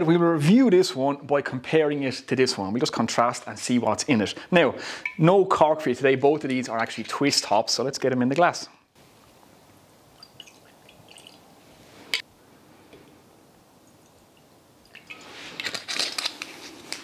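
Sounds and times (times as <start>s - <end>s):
liquid pouring into glass: 10.2s - 11.5s
bottle rustling and scraping: 14.9s - 17.0s.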